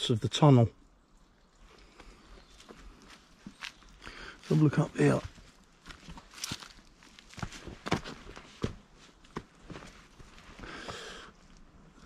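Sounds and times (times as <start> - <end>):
plants brushing and rustling: 1.6 - 10.6
footsteps through undergrowth: 1.6 - 11.7.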